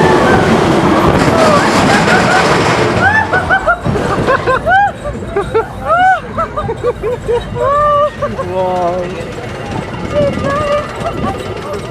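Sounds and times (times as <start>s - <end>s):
roller coaster wheels rumbling: 0.0s - 11.9s.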